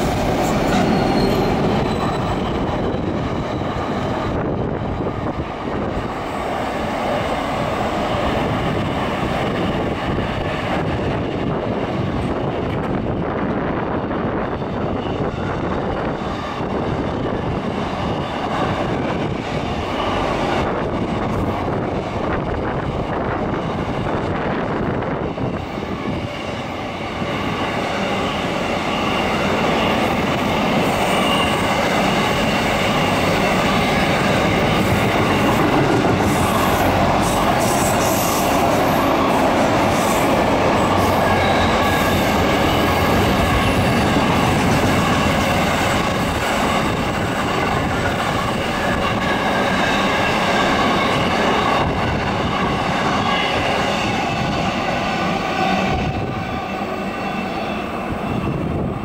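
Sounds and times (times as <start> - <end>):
freight train wagons rumbling: 0.0 - 59.0
wheel squeal: 0.5 - 2.6.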